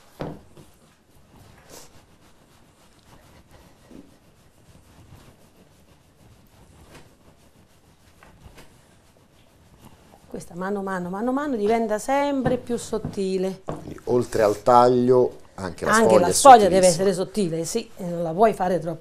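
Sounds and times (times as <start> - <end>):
rolling pin rubbing pasta dough: 0.0 - 15.2, 15.8 - 19.0.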